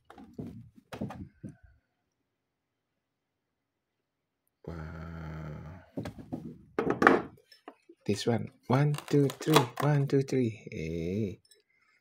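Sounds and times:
plastic cover rattle: 8.8s - 9.9s.

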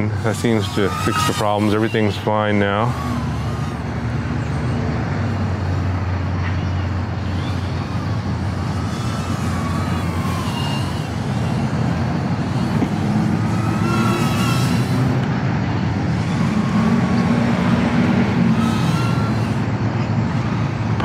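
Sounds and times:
road traffic: 0.0s - 21.0s
small drone motors whining: 0.0s - 21.0s
wind: 0.0s - 21.0s.

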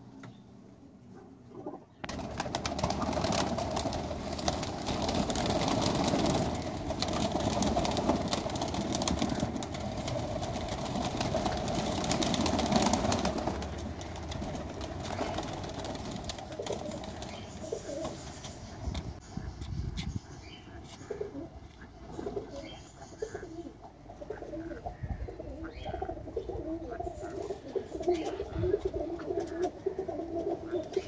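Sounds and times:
pigeons cooing: 1.2s - 19.2s, 19.9s - 31.0s.

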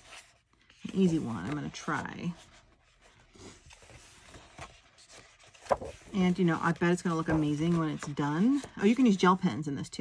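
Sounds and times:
paper pages turning: 0.0s - 9.2s
paper flapping: 3.8s - 8.7s.

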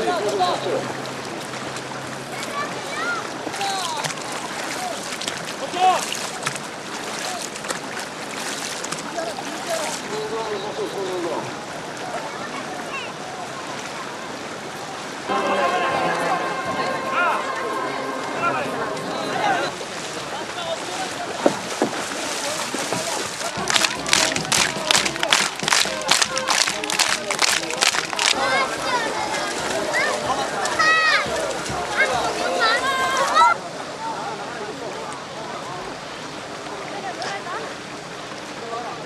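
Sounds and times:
water splashing: 0.0s - 33.8s
voices shouting outdoors: 15.0s - 20.8s, 28.1s - 34.8s
steady wash of noise: 15.1s - 20.5s
distant voices shouting: 15.2s - 20.0s
steady rushing noise: 15.3s - 20.4s
short sharp splashes: 19.7s - 32.1s.

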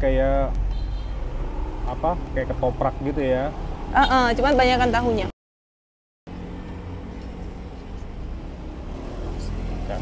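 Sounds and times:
traffic rumble: 0.0s - 5.3s, 6.3s - 10.0s.

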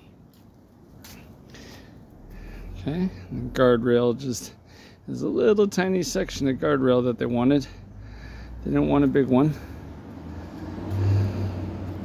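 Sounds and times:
car driving past: 7.6s - 12.0s.

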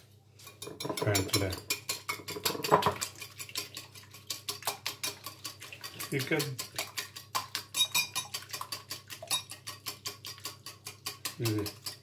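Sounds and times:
whisk clicking against bowl: 0.5s - 12.0s.

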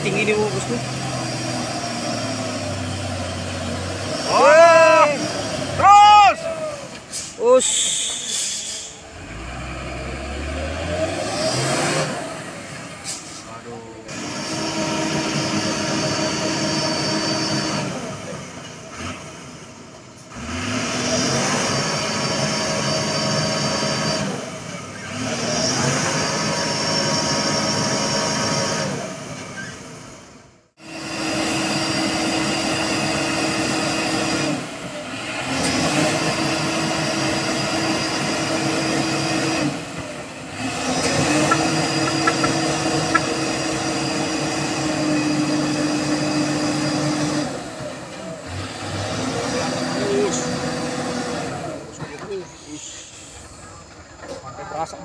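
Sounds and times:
truck diesel engine revving hard: 0.0s - 52.0s.

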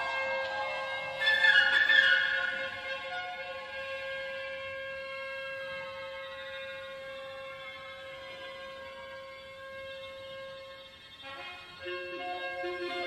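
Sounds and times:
soft orchestral music: 0.0s - 13.0s.

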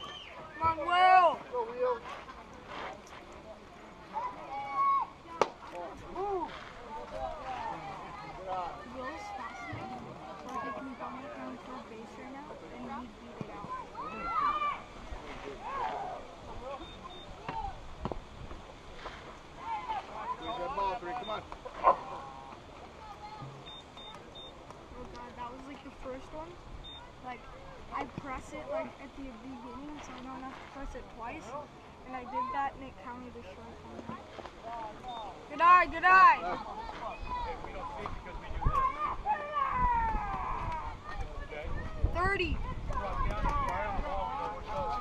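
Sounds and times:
spectators chattering: 0.0s - 45.0s.

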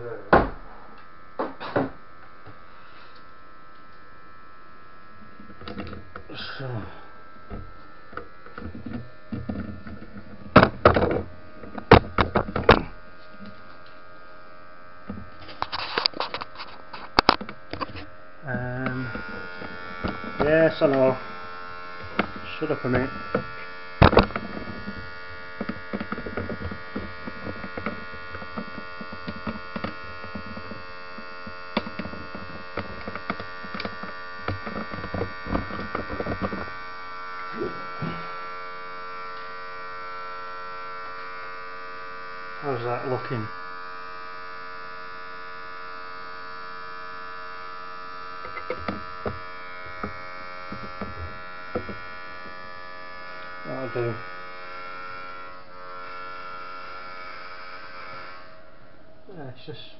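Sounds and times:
printer electric whine and hum: 0.0s - 59.9s.

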